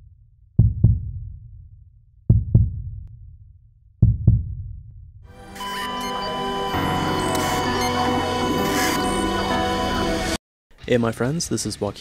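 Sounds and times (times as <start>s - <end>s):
heartbeat thumps: 0.6s - 1.7s, 2.3s - 3.1s, 4.0s - 5.0s
music: 5.3s - 10.4s.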